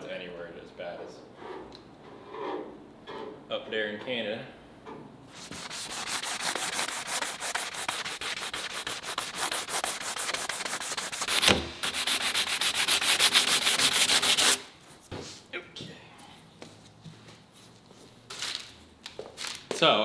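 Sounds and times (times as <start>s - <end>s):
sandpaper rubbing a panel: 5.3s - 14.7s
thump: 11.4s - 11.8s.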